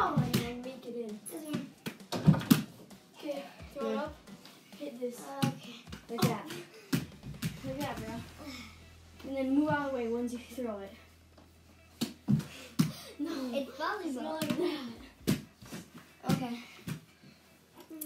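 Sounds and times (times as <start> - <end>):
girls talking and exclaiming: 13.1 - 15.2.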